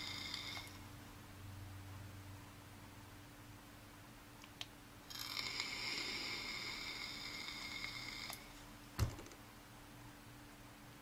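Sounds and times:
sharp knock: 9.0 - 9.4.

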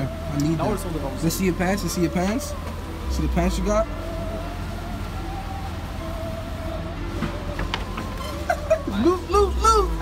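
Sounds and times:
heavy vehicle rumbling: 0.0 - 10.0
high steady whine: 0.0 - 10.0.

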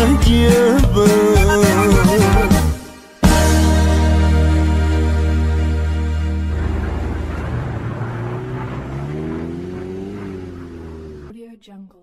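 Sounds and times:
vehicle engine revving: 5.7 - 11.3.

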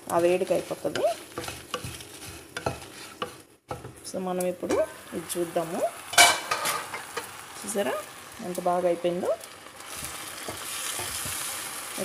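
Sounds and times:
spatula scraping a pan: 0.0 - 4.0, 9.9 - 11.6
faint sizzle: 0.0 - 12.0.

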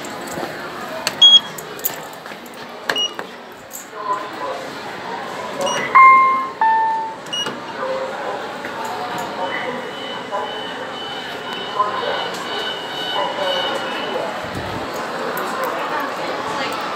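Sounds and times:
lift arrival chime: 5.6 - 8.1, 9.3 - 14.4.

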